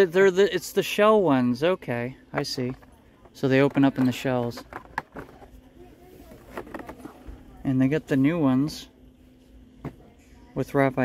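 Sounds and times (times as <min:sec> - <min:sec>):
low steady hum: 0:00.0 - 0:11.0
faint distant voices: 0:01.6 - 0:11.0.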